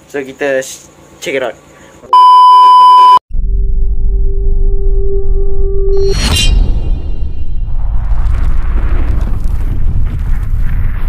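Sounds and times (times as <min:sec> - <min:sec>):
loud steady test tone beep: 0:02.1 - 0:03.2
low rumbling drone: 0:03.3 - 0:11.0.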